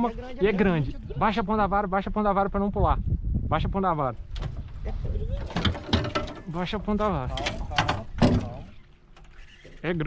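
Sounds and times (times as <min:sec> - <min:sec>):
wind rumble on microphone: 0:00.0 - 0:08.7
gear knocking against metal boat: 0:05.5 - 0:06.5.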